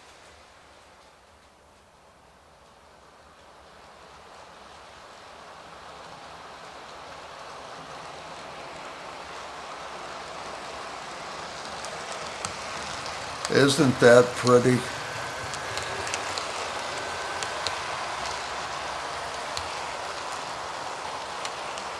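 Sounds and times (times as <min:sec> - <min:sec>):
model train rolling whirr: 0:00.0 - 0:21.9
track clicks: 0:11.5 - 0:21.9.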